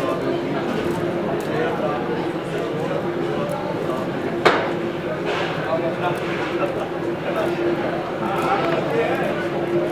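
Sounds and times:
indistinct chatter of voices: 0:00.0 - 0:09.9
sharp knock: 0:04.4 - 0:04.8.

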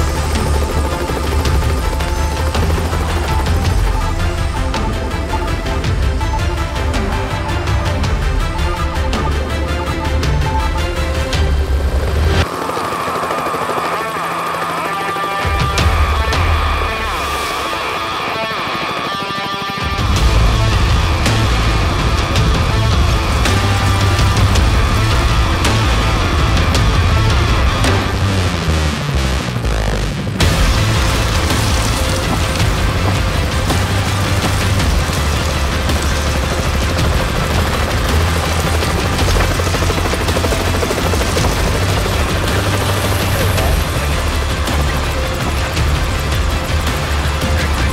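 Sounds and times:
helicopter flying past: 0:00.0 - 0:07.8, 0:09.6 - 0:28.1, 0:30.4 - 0:47.9
music: 0:00.0 - 0:47.9.

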